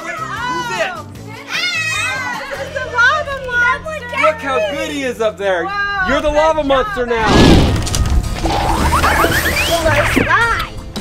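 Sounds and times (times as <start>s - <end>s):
background music: 0.0s - 11.0s
children shouting and squealing: 0.1s - 4.6s.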